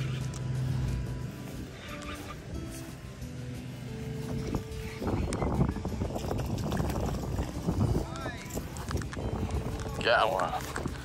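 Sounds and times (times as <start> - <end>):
background music tones: 0.0 - 11.0.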